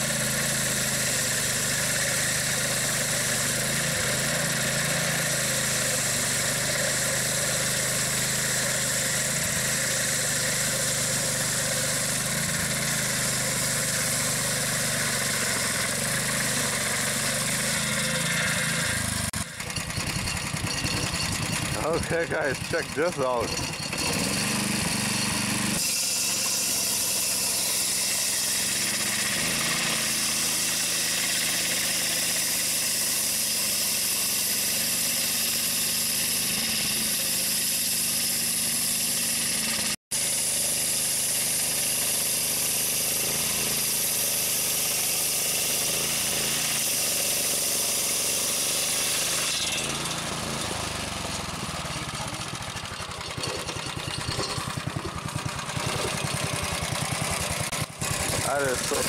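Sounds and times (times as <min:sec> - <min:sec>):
saw blade cutting wood hiss: 0:00.0 - 0:19.6, 0:21.8 - 0:51.8, 0:55.6 - 0:59.0
sawmill engine running: 0:00.0 - 0:59.0.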